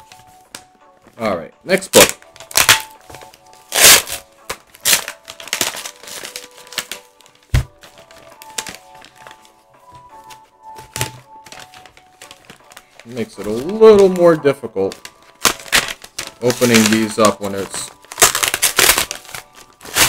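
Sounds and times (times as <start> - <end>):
quiet background music: 0.0 - 20.0
packaging crinkling and tearing: 1.9 - 9.5, 10.9 - 20.0.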